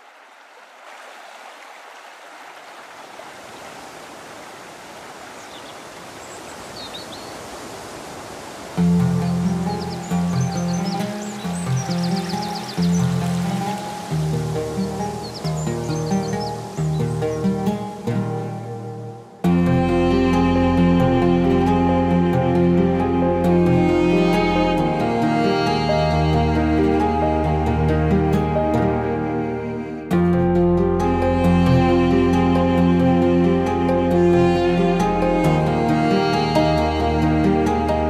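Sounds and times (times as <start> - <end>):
stream running over pebbles: 0.0 - 18.3
instrumental music with low pulse: 8.8 - 38.0.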